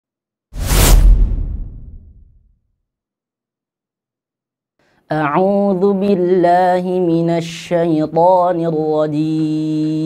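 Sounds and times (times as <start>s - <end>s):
deep rumble: 0.6s - 2.4s
cinematic whoosh: 0.6s - 2.5s.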